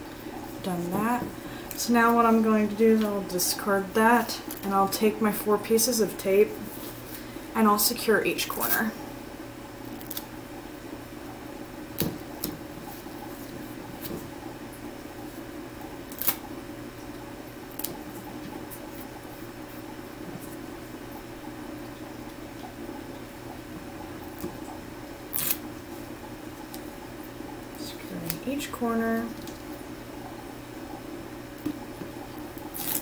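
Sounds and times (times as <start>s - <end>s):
steady low hum: 0.0s - 33.0s.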